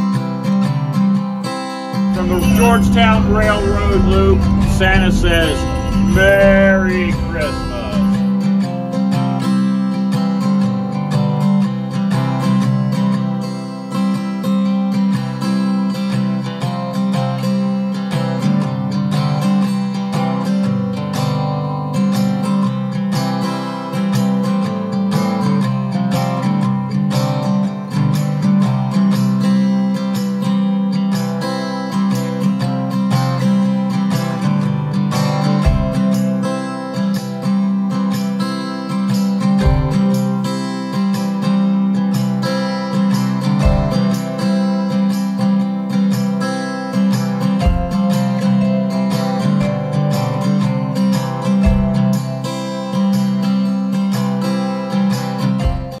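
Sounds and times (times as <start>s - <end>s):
strummed acoustic guitar music: 0.0s - 56.0s.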